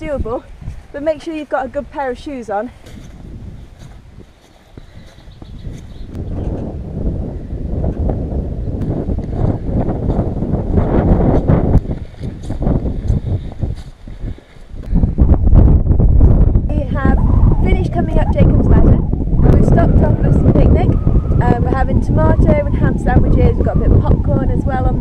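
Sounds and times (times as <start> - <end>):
wind buffeting microphone: 0.0 - 25.0
footsteps on stone steps: 2.6 - 6.2, 11.2 - 14.9.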